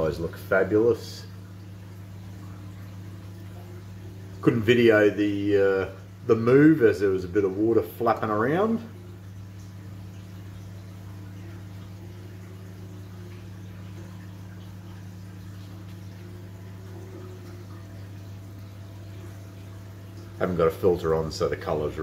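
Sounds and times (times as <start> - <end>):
aquarium pump humming: 0.0 - 22.0
water trickling: 0.0 - 22.0.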